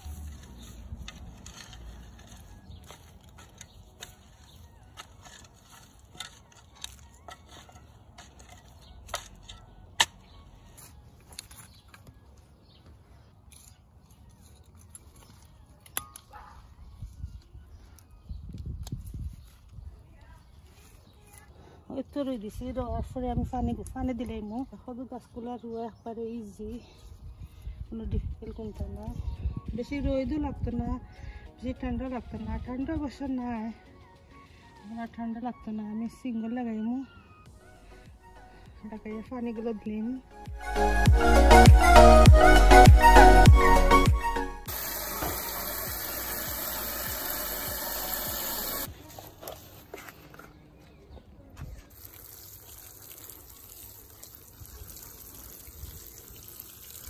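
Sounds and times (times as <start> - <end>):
gloved hand patting soil: 0.0 - 22.8
water from hose into watering can: 44.6 - 49.9, 51.7 - 57.0.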